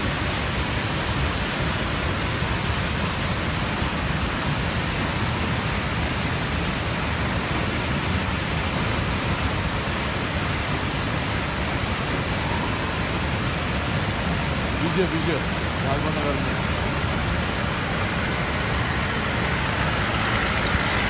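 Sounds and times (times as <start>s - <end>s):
waterfall rushing: 0.0s - 21.0s.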